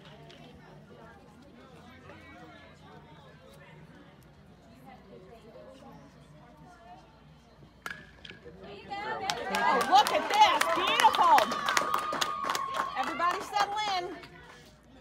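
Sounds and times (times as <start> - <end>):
bat cracking ball: 7.8 - 8.4
spectators cheering and clapping: 9.2 - 14.2.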